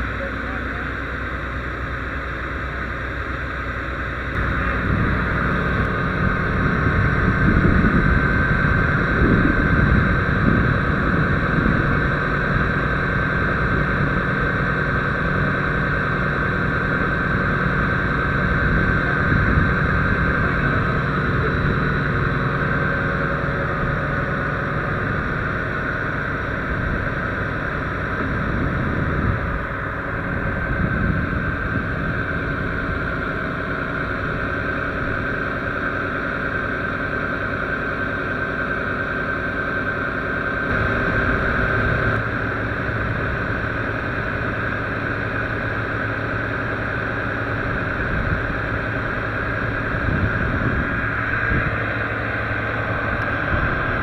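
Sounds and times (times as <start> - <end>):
high whine: 0.0 - 54.0
truck engine idling: 0.0 - 54.0.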